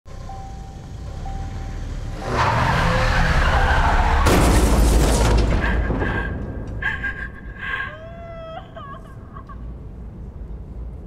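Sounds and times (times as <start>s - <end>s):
car noise: 0.1s - 7.8s
loud crash with deep boom: 4.2s - 6.6s.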